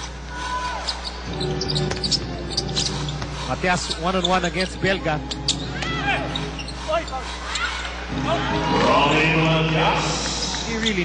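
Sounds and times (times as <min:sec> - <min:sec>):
crowd hum: 0:00.0 - 0:11.0
sneaker squeaks on hardwood: 0:00.8 - 0:04.5, 0:05.3 - 0:07.8.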